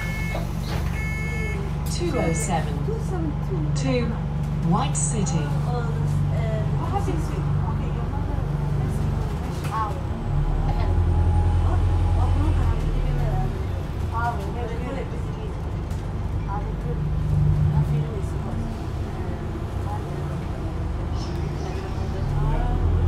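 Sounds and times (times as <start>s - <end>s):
bus drive hum: 0.0s - 23.0s
faint passenger voices: 0.0s - 23.0s.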